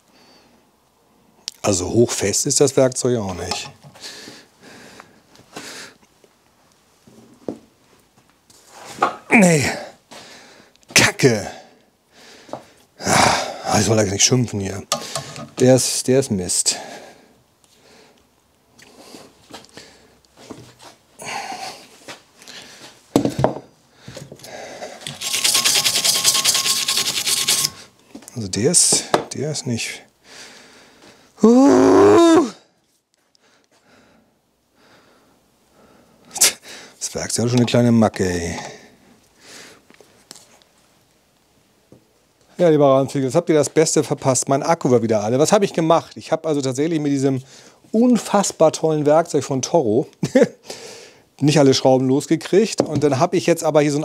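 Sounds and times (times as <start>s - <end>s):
man groaning: 31.4s - 32.6s.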